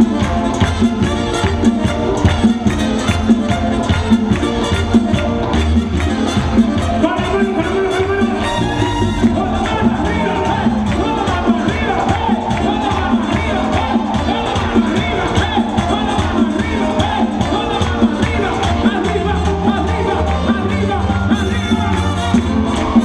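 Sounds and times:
crowd cheering and shouting: 0:00.0 - 0:23.0
live band with horns and percussion: 0:00.0 - 0:23.0.

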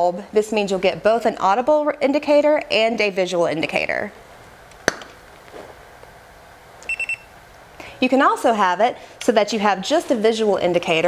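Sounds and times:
short high electronic beeps: 0:06.9 - 0:07.3.

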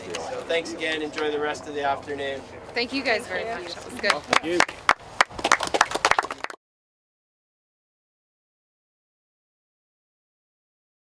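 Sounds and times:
small group clapping: 0:04.0 - 0:06.6.

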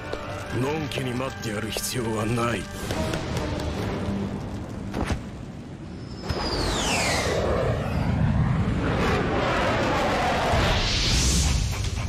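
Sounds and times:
rushing rumble: 0:02.7 - 0:12.0
falling whistle: 0:06.0 - 0:08.1.

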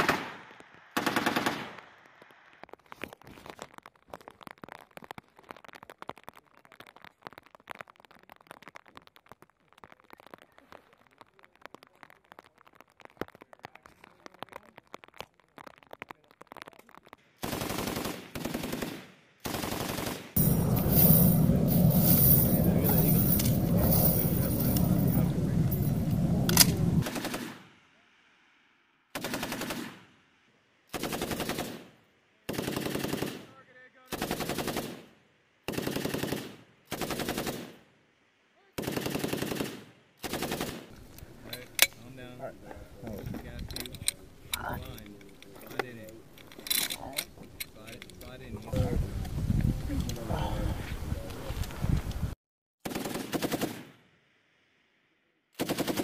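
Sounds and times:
machine gun firing bursts: 0:01.0 - 0:01.8, 0:17.4 - 0:26.0, 0:26.6 - 0:27.7, 0:29.2 - 0:30.0, 0:30.9 - 0:31.9, 0:32.5 - 0:33.5, 0:34.1 - 0:35.1, 0:35.7 - 0:37.7, 0:38.8 - 0:40.9, 0:52.8 - 0:53.9, 0:55.6 - 0:56.0.

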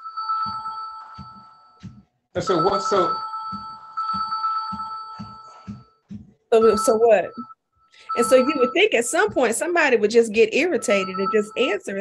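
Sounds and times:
phone ringtone: 0:00.0 - 0:12.0.

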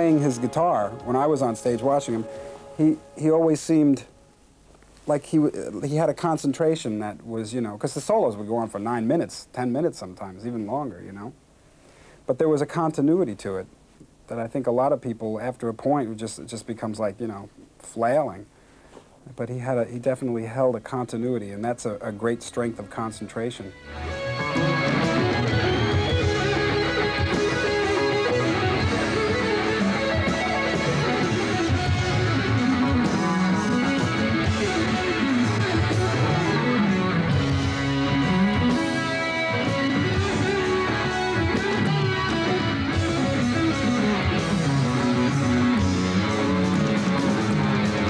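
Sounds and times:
electric guitar solo: 0:00.0 - 0:03.7, 0:23.7 - 0:48.0.

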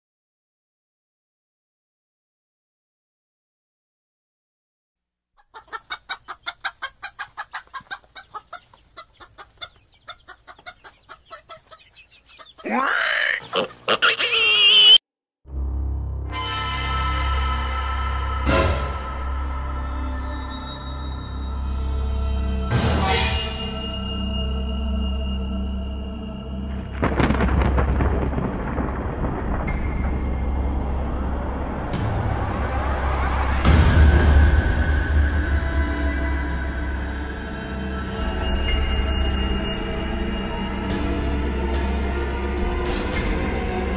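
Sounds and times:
chicken clucking: 0:05.4 - 0:14.4
low rumbling noise: 0:26.5 - 0:35.8
loud crash: 0:26.8 - 0:35.5.

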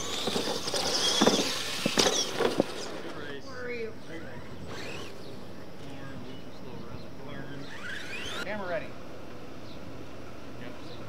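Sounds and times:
electric motor whining: 0:04.1 - 0:05.4, 0:07.3 - 0:08.6.

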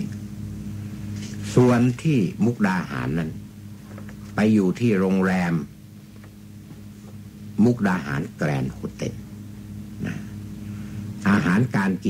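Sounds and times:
steady low electrical hum: 0:00.0 - 0:12.0.

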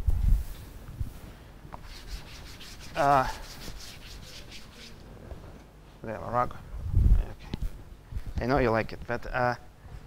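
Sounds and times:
scratchy writing on a board: 0:01.8 - 0:05.0.

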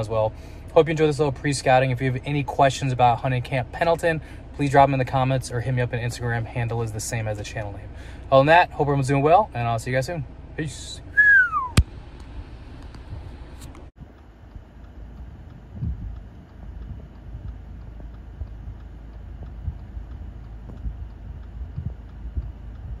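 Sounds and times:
falling whistle-like tone: 0:11.1 - 0:11.8
sharp click: 0:11.6 - 0:13.9
wind buffeting microphone: 0:14.4 - 0:23.0.

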